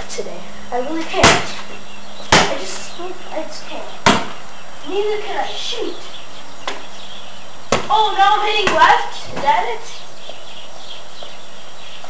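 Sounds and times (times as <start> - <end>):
basketball striking the hoop: 4.0 - 4.4.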